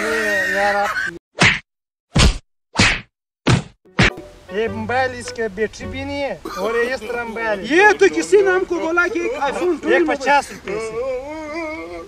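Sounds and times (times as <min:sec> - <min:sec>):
sharp whack sound effects: 0:01.4 - 0:04.3.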